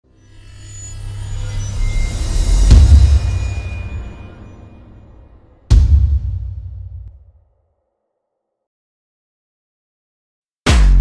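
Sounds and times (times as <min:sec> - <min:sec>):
deep rumbling swell: 0:00.3 - 0:07.1
heavy bass hit: 0:02.4 - 0:05.0, 0:05.6 - 0:07.1.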